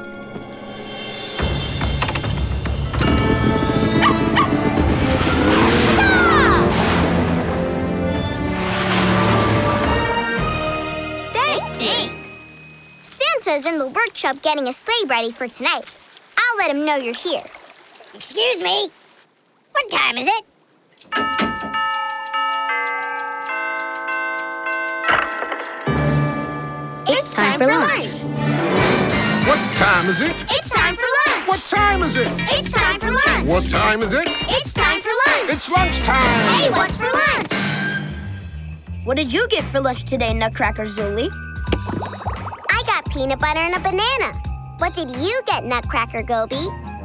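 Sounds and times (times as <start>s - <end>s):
cartoon background music: 0.0s - 13.3s, 25.8s - 47.0s
dog yips: 4.0s - 4.6s
chiming bell-like notes: 10.0s - 13.1s, 21.1s - 28.2s
fast clock ticking: 21.2s - 26.1s.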